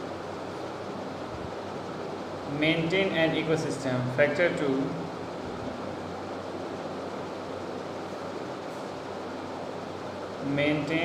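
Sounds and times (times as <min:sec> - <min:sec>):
constant hiss: 0:00.0 - 0:11.0.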